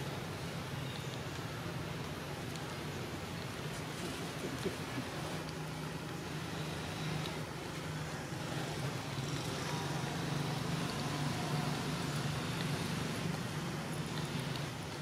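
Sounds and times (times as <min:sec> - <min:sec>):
faint background noise: 0:00.0 - 0:15.0
vehicle engine humming: 0:00.0 - 0:15.0.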